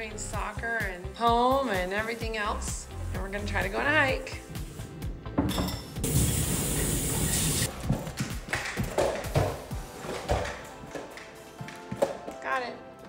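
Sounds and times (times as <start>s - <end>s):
background music: 0.0s - 13.0s
faucet running into sink: 6.0s - 7.7s.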